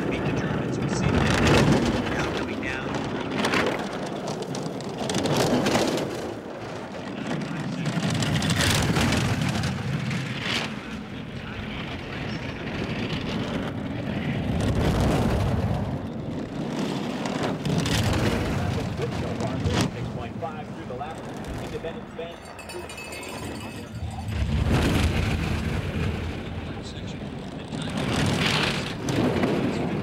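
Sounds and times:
bobsled runners rumbling on ice: 0:00.0 - 0:30.0.

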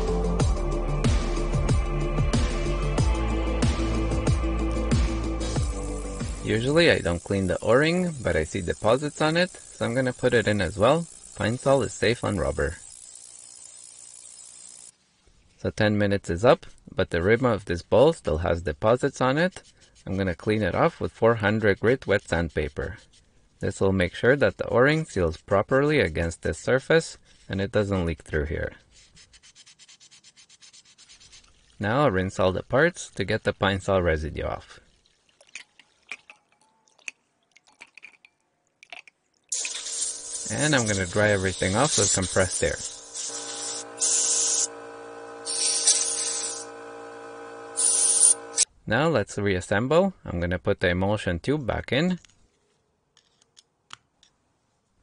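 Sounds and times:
ultrasonic cleaner hiss and buzz: 0:04.8 - 0:15.1, 0:39.5 - 0:48.7
water drips and small splashes: 0:31.3 - 0:31.8, 0:34.7 - 0:39.8.

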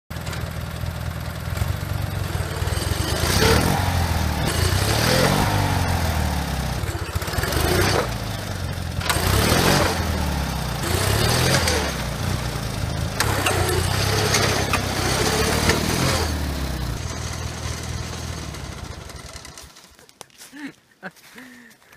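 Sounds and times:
lawn tractor engine revving: 0:00.1 - 0:20.1.

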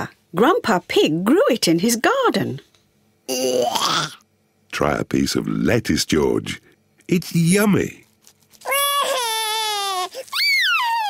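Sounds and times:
cartoon toddler wailing: 0:08.6 - 0:11.0.

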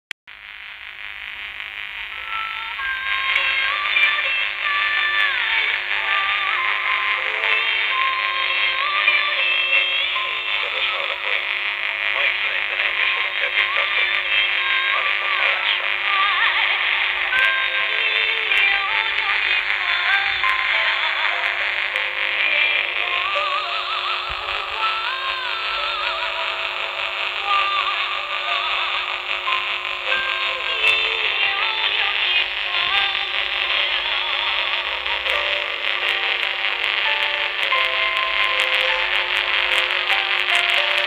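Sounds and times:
muffled music on am radio: 0:00.4 - 0:41.0.

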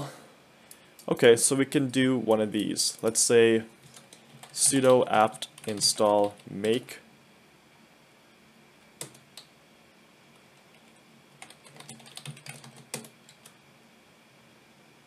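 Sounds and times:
computer keyboard typing: 0:03.8 - 0:06.8, 0:09.0 - 0:09.5, 0:10.7 - 0:13.6.

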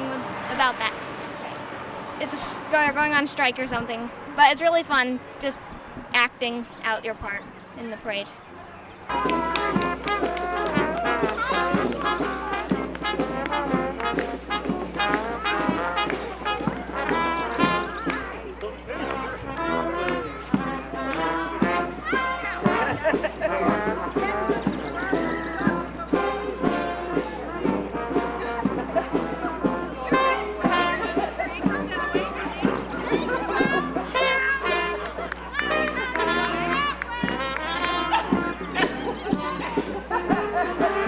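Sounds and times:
brass marching band playing: 0:09.0 - 0:41.0.

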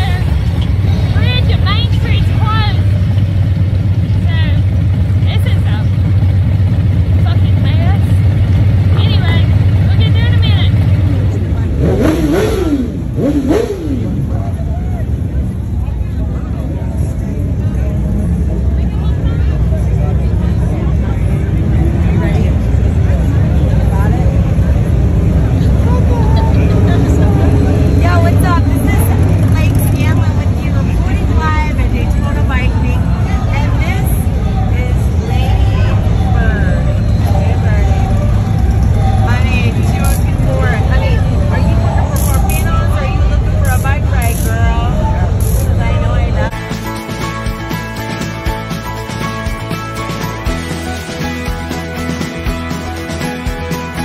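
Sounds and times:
crowd of voices chattering: 0:00.0 - 0:54.0
low rumble of vehicle engines: 0:00.0 - 0:54.0.

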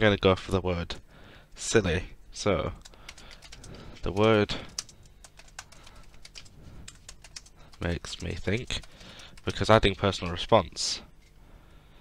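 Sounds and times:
typing on computer keyboard: 0:02.8 - 0:10.6.

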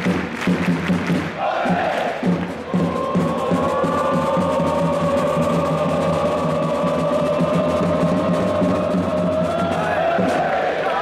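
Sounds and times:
steady drum beat: 0:00.0 - 0:11.0
crowd singing held note: 0:01.3 - 0:11.0.

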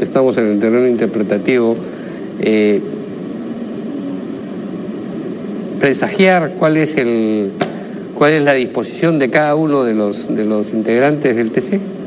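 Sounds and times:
background hiss: 0:00.0 - 0:12.0
low hum: 0:00.0 - 0:12.0
speech: 0:02.4 - 0:02.9, 0:08.2 - 0:11.9.

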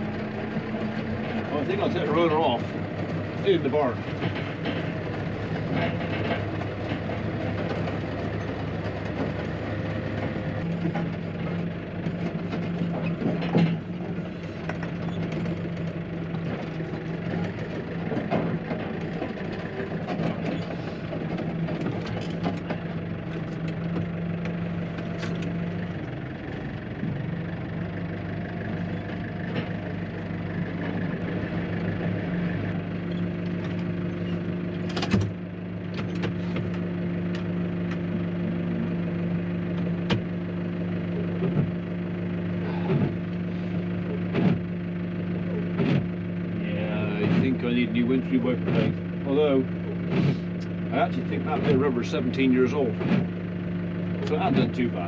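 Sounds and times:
clunks: 0:00.0 - 0:55.0
tractor engine running: 0:00.0 - 0:55.0.

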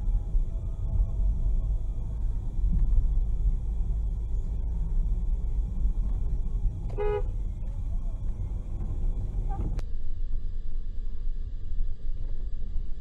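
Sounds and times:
car road and engine rumble: 0:00.0 - 0:13.0
car horn toot: 0:06.9 - 0:07.4.

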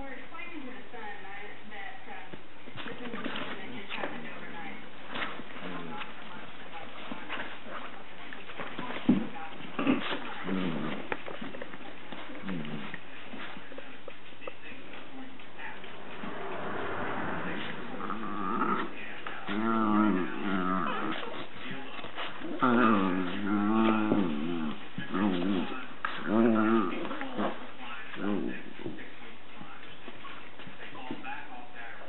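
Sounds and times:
paws scuffling on dog bed: 0:02.2 - 0:16.2, 0:17.6 - 0:32.0
dogs vocalising: 0:19.4 - 0:28.7.

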